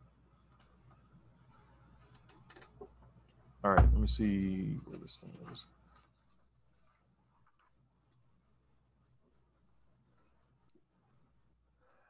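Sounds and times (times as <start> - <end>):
faint low hum: 2.9 - 12.0.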